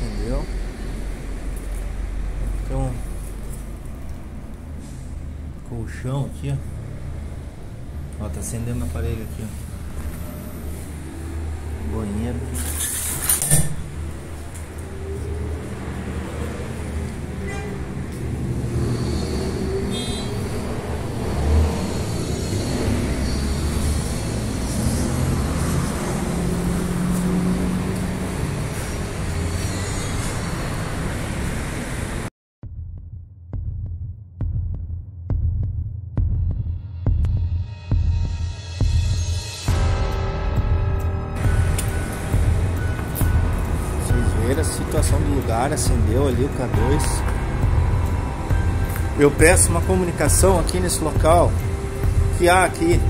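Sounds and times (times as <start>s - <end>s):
road traffic rumble: 0.0s - 32.3s, 41.0s - 53.0s
throbbing suspense music: 13.7s - 30.1s, 32.6s - 53.0s.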